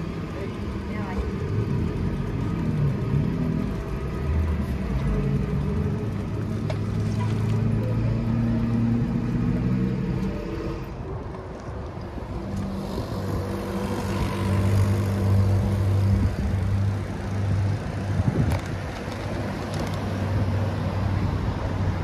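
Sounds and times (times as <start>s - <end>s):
vehicle engine humming: 0.0s - 22.0s.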